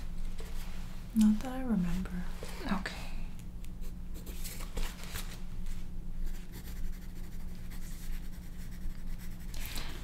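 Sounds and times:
pencil scratching on paper: 6.3 - 10.0.

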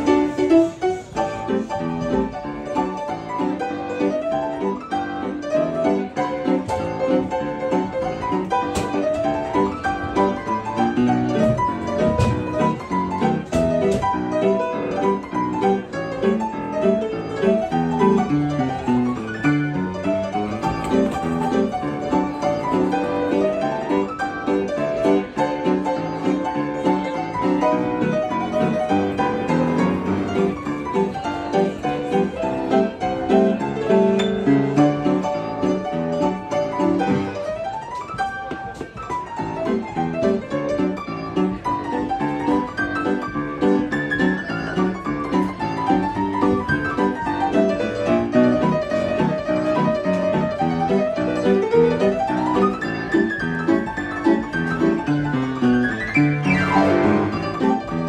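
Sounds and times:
upright piano playing ragtime: 0.0 - 58.0.

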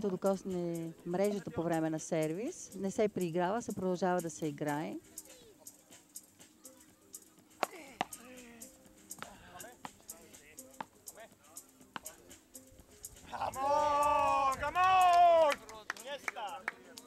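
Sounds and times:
faint players' voices: 4.9 - 17.0
paddles hitting ball: 11.9 - 12.2.

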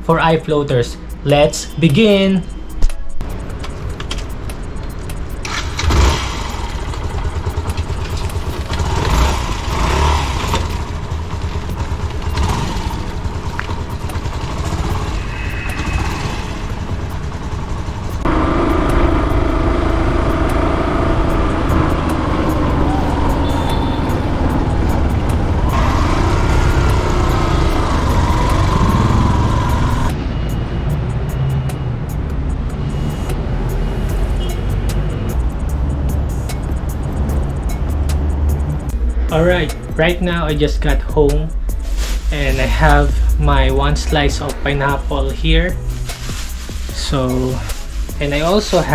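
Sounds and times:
motorcycle engine and road rumble: 3.2 - 48.9
steady pitched tones: 38.6 - 46.0.

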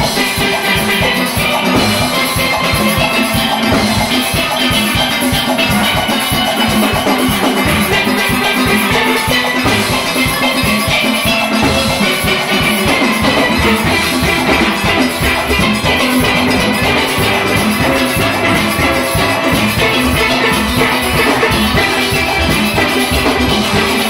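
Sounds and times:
steel orchestra playing: 0.0 - 24.0.

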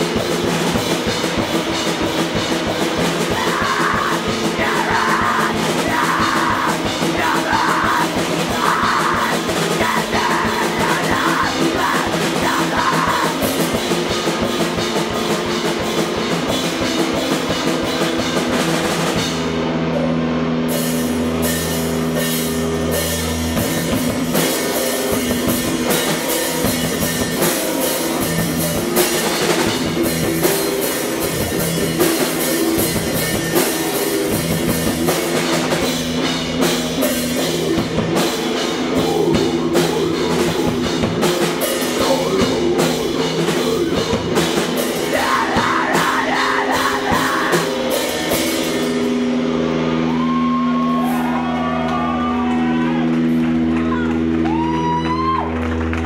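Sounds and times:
loud screamo band playing: 0.0 - 56.0
drum strikes: 20.7 - 49.6.

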